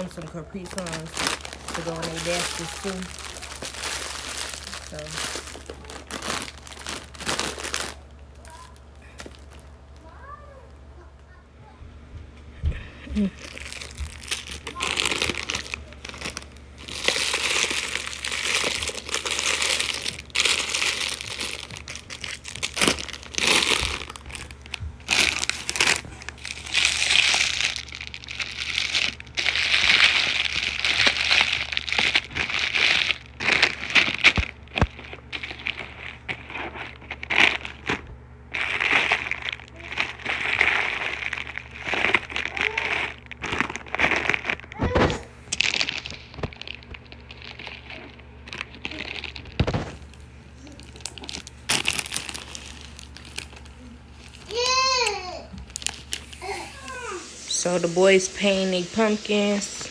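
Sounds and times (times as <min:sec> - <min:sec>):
plastic wrappers crinkling: 0:00.0 - 0:11.1, 0:13.1 - 0:59.9.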